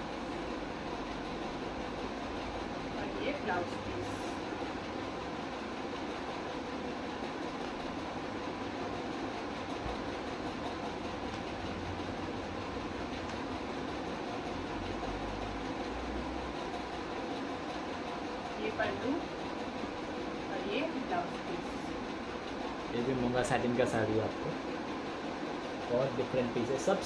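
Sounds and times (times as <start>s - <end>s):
steady background hum and hiss: 0.0s - 27.0s.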